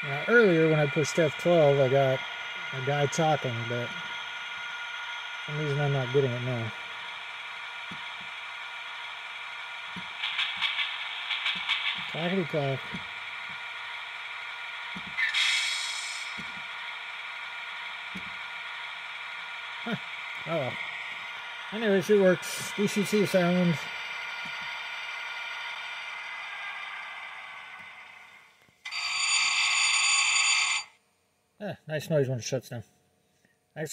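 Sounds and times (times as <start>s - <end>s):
model locomotive engine sound: 0.0s - 31.0s
rapid clicking rail sound effect: 4.4s - 30.9s
loud hiss: 9.0s - 18.0s.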